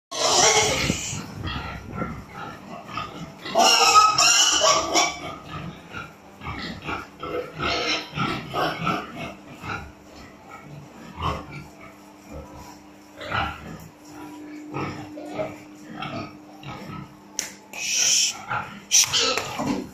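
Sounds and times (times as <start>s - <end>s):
pigs grunting: 0.1s - 19.9s
pigs squealing: 0.1s - 19.9s.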